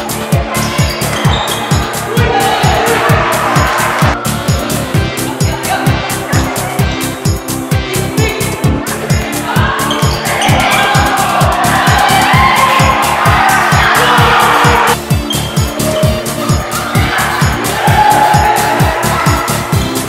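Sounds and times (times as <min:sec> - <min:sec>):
electronic dance music: 0:00.0 - 0:20.0
loud noisy synth: 0:01.6 - 0:04.2, 0:09.6 - 0:15.0.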